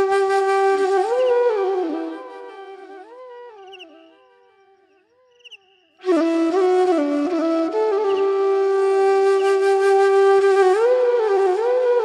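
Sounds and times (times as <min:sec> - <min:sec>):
bamboo flute melody: 0:00.0 - 0:04.5, 0:05.6 - 0:12.0.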